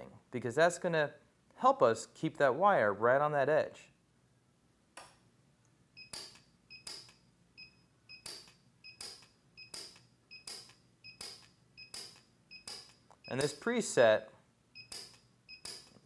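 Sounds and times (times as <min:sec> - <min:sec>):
welder pulse snaps: 0:08.2 - 0:13.6, 0:14.9 - 0:16.0.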